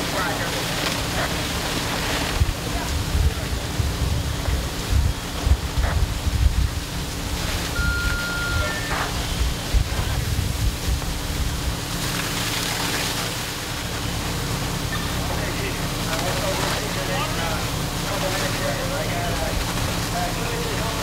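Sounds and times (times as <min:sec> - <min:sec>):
low hum: 0:00.0 - 0:16.6
rushing roar of fire: 0:00.0 - 0:21.0
wind buffeting microphone: 0:02.4 - 0:08.0, 0:09.2 - 0:11.8
high beep: 0:07.7 - 0:09.2.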